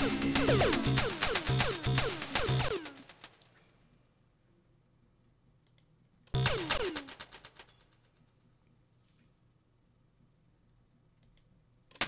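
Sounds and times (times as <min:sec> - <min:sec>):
faint clicks: 0:05.6 - 0:06.4, 0:11.2 - 0:12.0.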